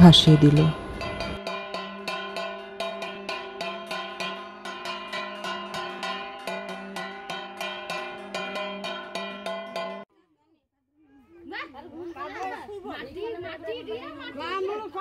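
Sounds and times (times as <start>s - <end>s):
metal bell struck rhythmically: 0.0s - 10.0s.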